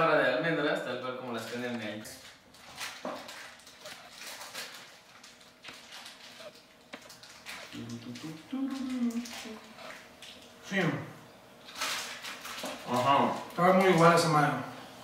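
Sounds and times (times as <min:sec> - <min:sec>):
people chewing crunchy food: 0:01.6 - 0:10.6, 0:11.6 - 0:13.6
person humming mmm: 0:07.7 - 0:10.0.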